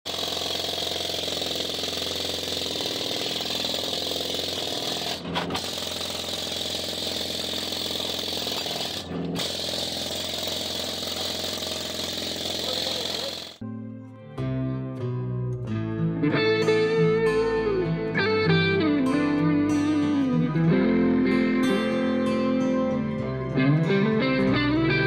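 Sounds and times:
pneumatic tool running: 0:00.1 - 0:13.6
guitar music: 0:13.6 - 0:25.0.

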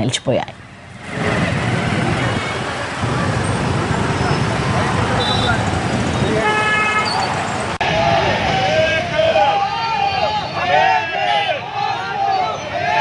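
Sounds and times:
traffic jam engines: 0:00.0 - 0:13.0
vehicle horn honking: 0:05.2 - 0:07.4.

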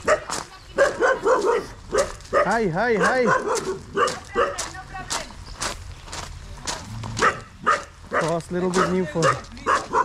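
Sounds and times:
dog barking: 0:00.0 - 0:04.7, 0:07.2 - 0:10.0.

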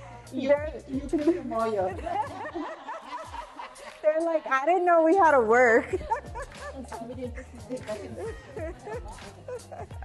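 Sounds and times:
soft music with bass line: 0:00.0 - 0:10.0.

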